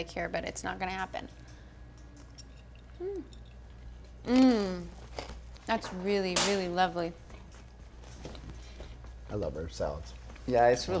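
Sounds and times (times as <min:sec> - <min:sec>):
woman humming mmm: 0:02.9 - 0:03.4, 0:04.2 - 0:05.0.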